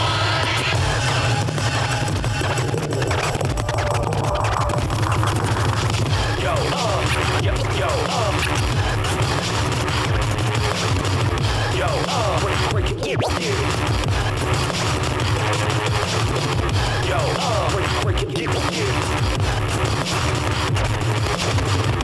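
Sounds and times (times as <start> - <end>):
hip-hop beat with heavy bass: 0.0 - 22.0
vinyl record scratching: 0.0 - 22.0.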